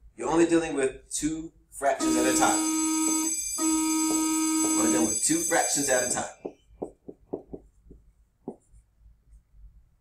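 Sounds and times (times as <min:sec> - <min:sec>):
stylus tap: 0:06.4 - 0:08.7.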